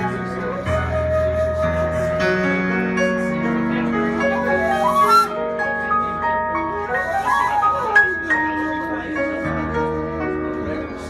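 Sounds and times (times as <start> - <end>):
flute with bending pitches: 0.0 - 2.8, 4.3 - 5.7, 6.6 - 8.3
keyboard: 0.0 - 11.0.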